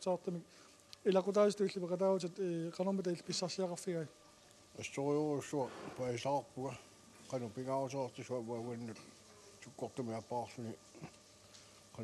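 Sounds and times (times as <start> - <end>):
man talking: 0.0 - 4.1, 4.8 - 11.2.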